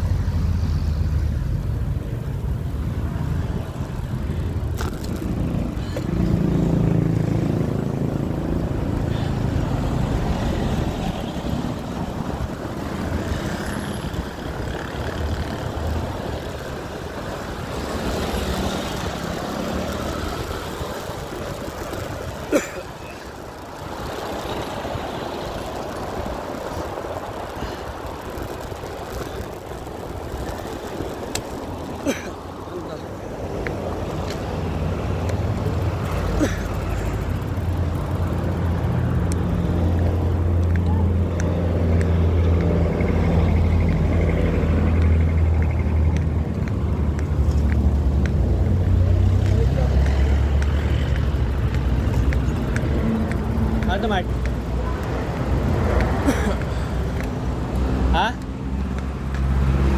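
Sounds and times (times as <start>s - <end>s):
car engines and tyre noise: 0.0s - 59.9s.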